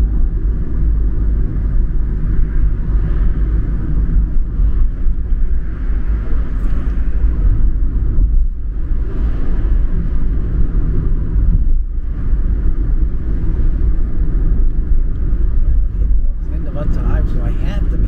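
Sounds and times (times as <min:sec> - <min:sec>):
engine and tyre rumble: 0:00.0 - 0:18.0.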